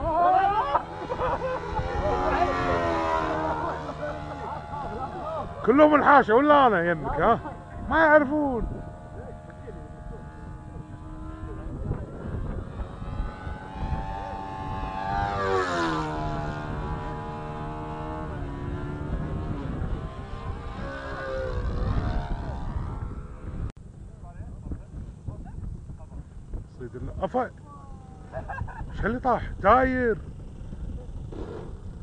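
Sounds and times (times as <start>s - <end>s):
model airplane engine passing: 0.0s - 24.4s, 25.4s - 32.0s.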